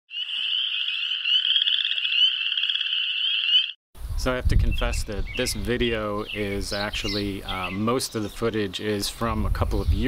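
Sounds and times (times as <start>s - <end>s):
high fast-trilling animal calls: 0.1s - 3.8s.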